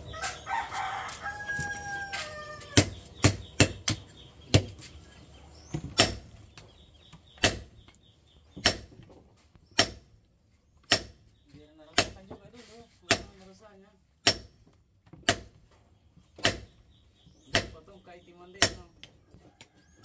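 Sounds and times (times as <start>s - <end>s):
rooster crowing: 0.1s - 2.9s
hammer striking steel on anvil: 10.9s - 11.2s, 14.2s - 14.6s.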